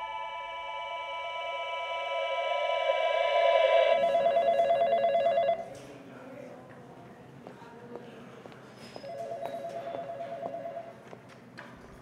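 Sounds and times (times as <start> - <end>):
sustained drone: 0.0 - 4.2
telephone ringing electronic warble: 0.0 - 5.6.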